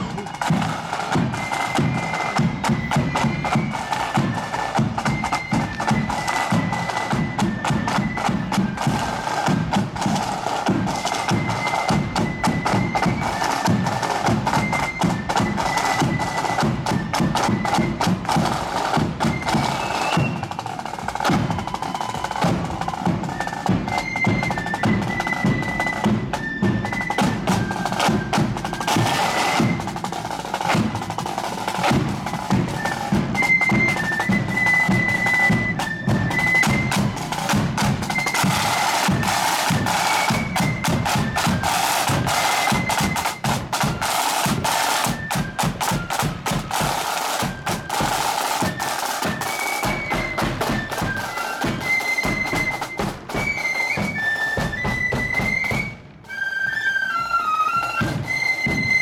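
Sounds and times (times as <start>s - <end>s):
side drums and bass drum: 0.0s - 3.6s
bagpipes: 0.0s - 59.0s.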